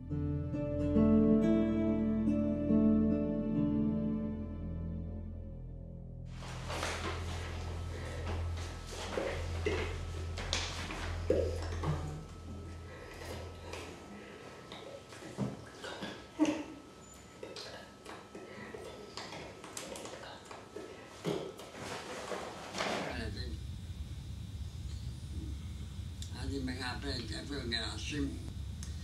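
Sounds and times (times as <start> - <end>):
low hum: 2.4 - 17.5, 23.1 - 29.0.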